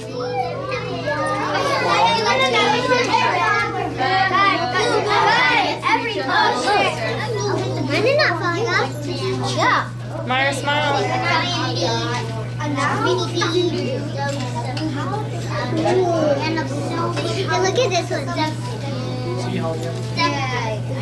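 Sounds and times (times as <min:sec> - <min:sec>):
children babbling: 0:00.0 - 0:10.2, 0:10.9 - 0:21.0.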